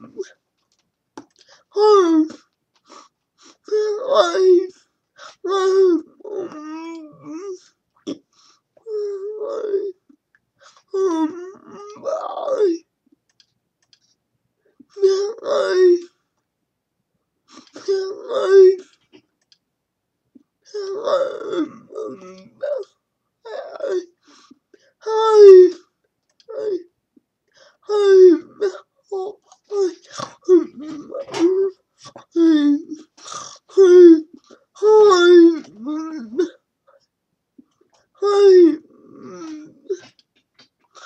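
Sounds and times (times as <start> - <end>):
person making drawn-out vocal sounds: 20.7 - 22.9, 27.9 - 36.6, 38.2 - 40.2.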